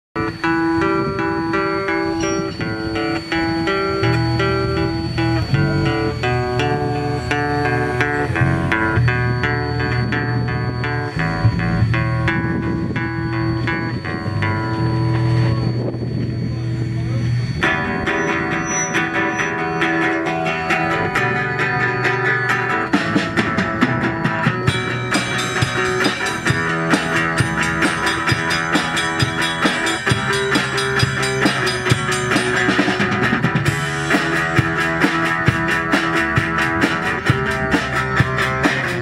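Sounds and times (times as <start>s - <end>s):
acoustic guitar picking melody: 0.2s - 39.0s
electric bass guitar: 0.2s - 39.0s.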